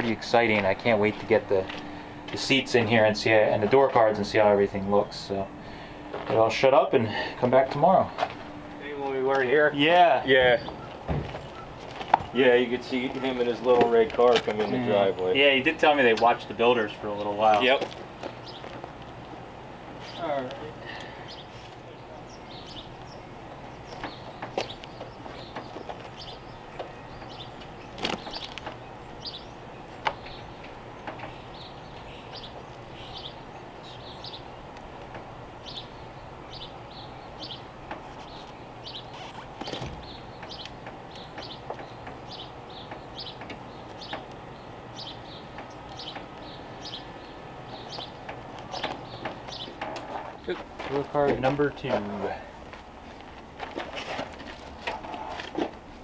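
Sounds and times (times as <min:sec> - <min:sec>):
birds chirping: 0:00.0 - 0:56.0.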